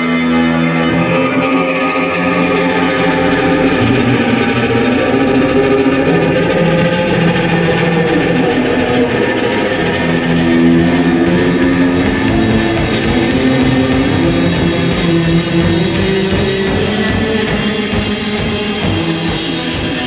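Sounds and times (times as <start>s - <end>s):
bass guitar: 0.0s - 20.0s
distorted electric guitar: 0.0s - 20.0s
live rock band playing: 0.0s - 20.0s.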